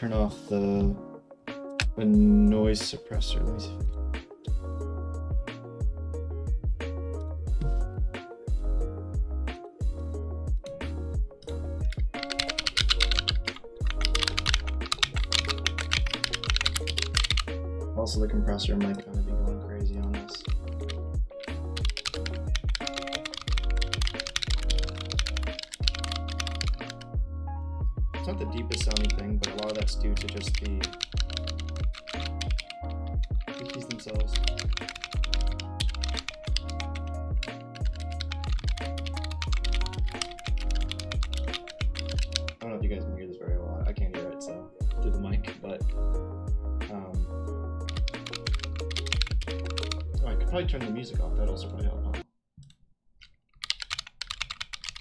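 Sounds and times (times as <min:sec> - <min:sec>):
fast typing on keyboard: 0:11.8 - 0:17.5, 0:20.3 - 0:27.1, 0:28.4 - 0:42.6, 0:47.8 - 0:50.1, 0:53.6 - 0:55.0.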